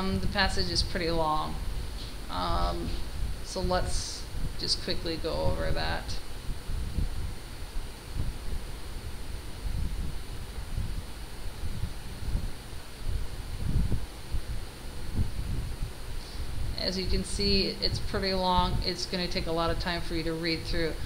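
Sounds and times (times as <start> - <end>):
low rumble on microphone: 0.0 - 21.0.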